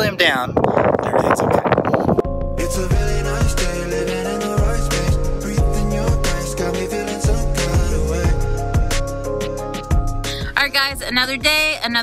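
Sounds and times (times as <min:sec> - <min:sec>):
wind buffeting microphone: 0:00.0 - 0:03.6
background music with bass line: 0:02.1 - 0:12.0.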